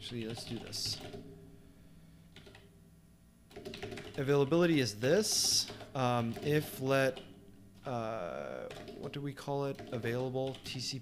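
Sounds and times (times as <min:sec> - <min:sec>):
faint room hum: 0:00.0 - 0:11.0
keyboard keystrokes: 0:02.3 - 0:02.6, 0:03.5 - 0:04.3, 0:05.2 - 0:07.3, 0:08.7 - 0:10.9.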